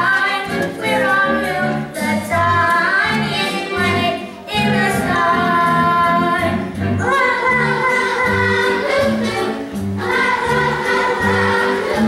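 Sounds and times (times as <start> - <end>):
instrumental accompaniment: 0.0 - 12.0
children singing: 0.1 - 12.0.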